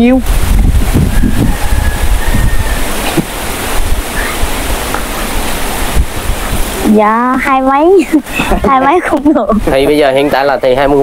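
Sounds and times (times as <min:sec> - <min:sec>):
wind buffeting microphone: 0:00.0 - 0:10.2.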